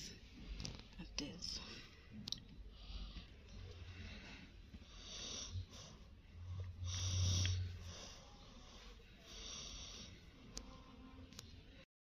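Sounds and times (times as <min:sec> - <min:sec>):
heavy breathing: 0:01.8 - 0:10.5.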